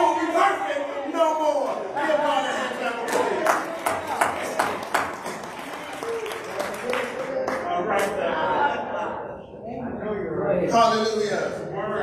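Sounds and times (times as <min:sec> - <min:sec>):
sharp hand claps: 0:03.1 - 0:08.1.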